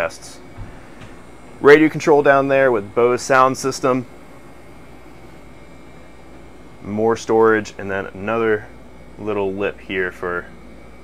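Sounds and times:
air conditioning hum and hiss: 0.0s - 11.0s
faint thin whine: 0.0s - 11.0s.

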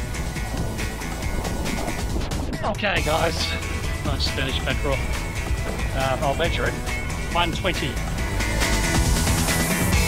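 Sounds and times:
music with steady beat: 0.0s - 10.0s
wind: 0.0s - 10.0s.

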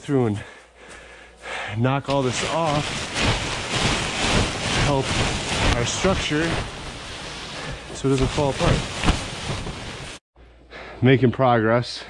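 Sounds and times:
broom knocking on plastic film: 2.1s - 10.2s
snow sliding rustling hiss: 2.1s - 10.2s.

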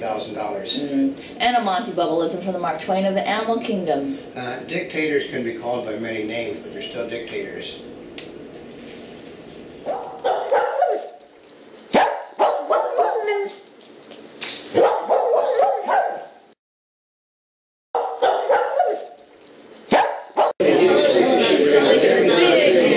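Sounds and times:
dog-like barking and yapping: 9.8s - 11.2s, 11.9s - 13.6s, 14.7s - 16.4s, 18.0s - 19.2s, 19.9s - 20.6s.

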